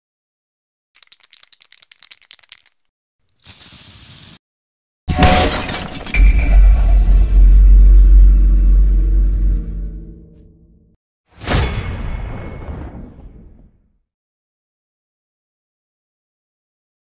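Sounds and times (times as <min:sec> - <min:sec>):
quick crackles: 0:01.0 - 0:04.4
hiss burst: 0:03.4 - 0:04.4
loud crash: 0:05.1 - 0:10.5, 0:11.4 - 0:13.8
deep rumble with ringing tones: 0:06.1 - 0:10.8.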